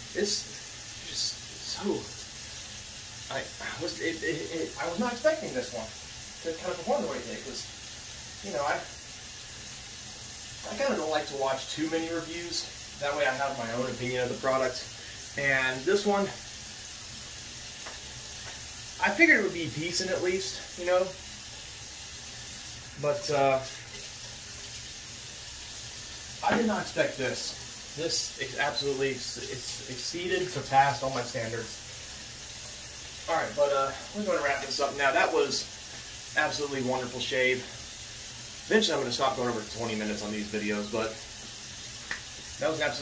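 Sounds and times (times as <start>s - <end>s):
sink tap running: 0.0s - 43.0s
steady hiss: 0.0s - 43.0s.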